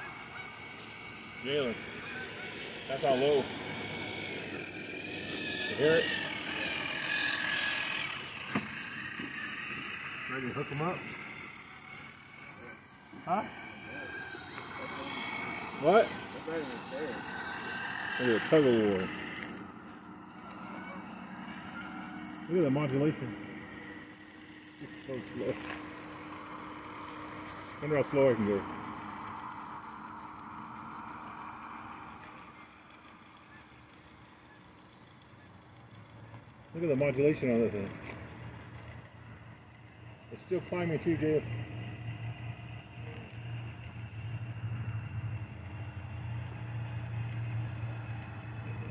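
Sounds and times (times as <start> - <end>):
thin whine of electric motor: 0.0 - 48.9.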